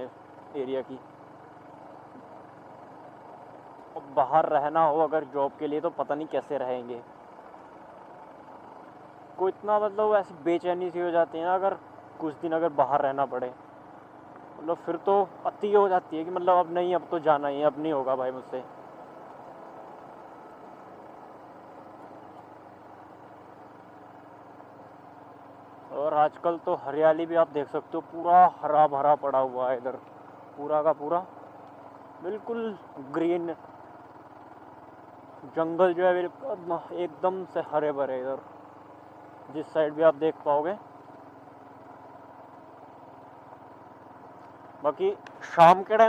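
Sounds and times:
motorcycle engine running: 0.0s - 46.0s
road and wind noise: 0.0s - 46.0s.

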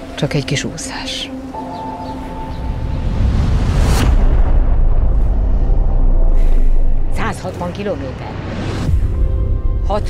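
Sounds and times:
low rumble: 2.3s - 10.0s
deep boom: 2.8s - 7.3s.

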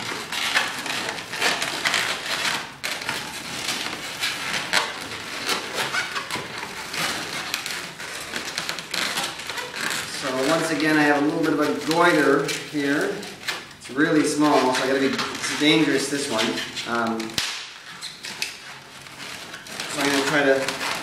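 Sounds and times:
balloons rubbing and scrunching: 0.0s - 21.0s.

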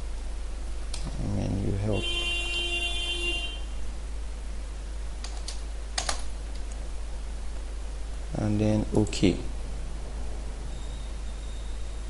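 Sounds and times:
keyboard keystrokes: 5.2s - 6.8s.

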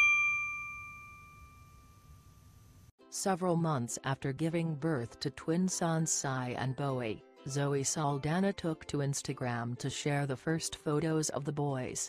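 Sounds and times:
bright bell-like ding: 0.0s - 2.3s.

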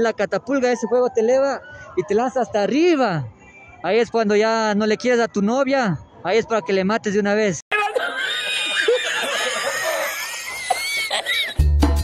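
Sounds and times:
man laughing hard: 7.7s - 11.7s.

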